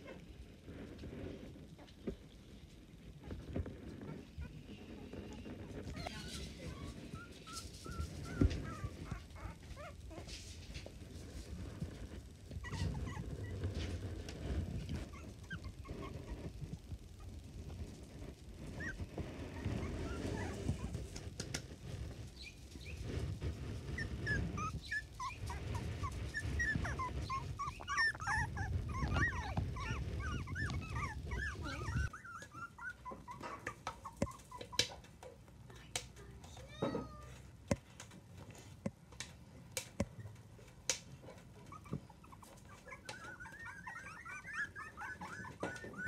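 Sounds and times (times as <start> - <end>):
puppies whimpering and squeaking: 3.2 - 10.4, 12.5 - 14.2, 14.8 - 17.4, 18.6 - 21.2, 22.2 - 35.3, 36.4 - 37.5, 40.1 - 46.0.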